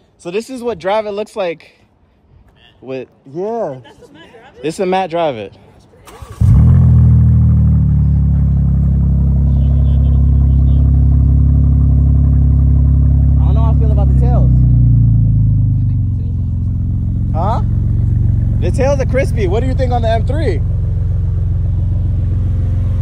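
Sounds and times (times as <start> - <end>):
car engine starting and idling: 6.0 - 23.0.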